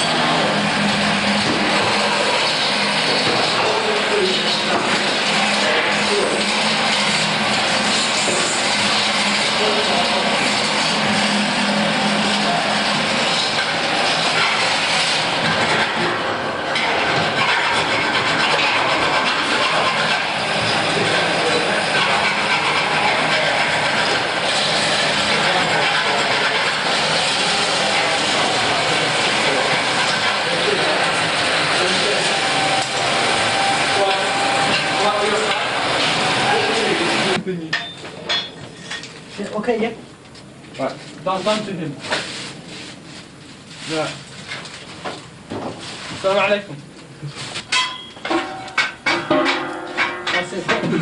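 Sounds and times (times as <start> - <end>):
electric grinder grinding metal: 0.0 - 16.2, 16.8 - 37.4.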